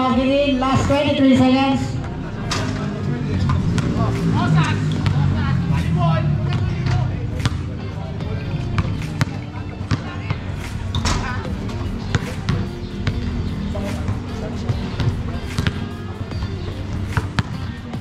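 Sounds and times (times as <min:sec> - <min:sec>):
basketballs bouncing on concrete: 0:00.0 - 0:05.3, 0:06.5 - 0:07.8, 0:08.7 - 0:18.0
background music: 0:00.0 - 0:18.0
crowd chatter: 0:00.0 - 0:18.0.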